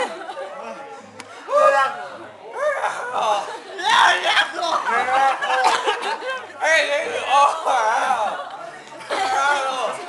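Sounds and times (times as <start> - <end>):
men chattering: 0.0 - 10.0.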